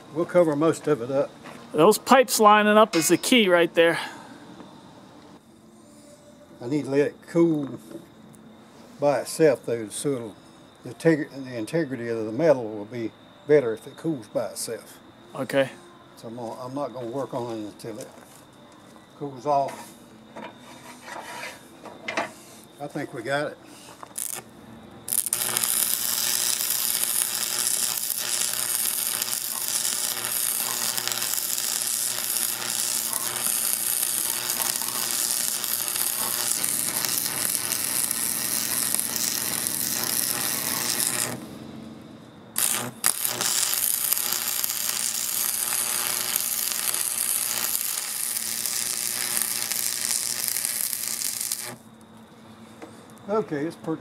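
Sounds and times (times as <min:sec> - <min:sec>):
arc welding hissing buzz: 0:00.0 - 0:04.0, 0:15.4 - 0:52.1.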